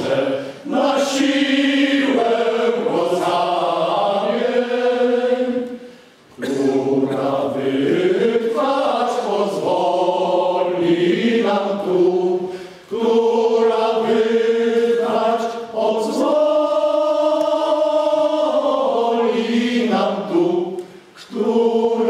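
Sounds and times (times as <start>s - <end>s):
men's choir singing a cappella: 0.0s - 22.0s.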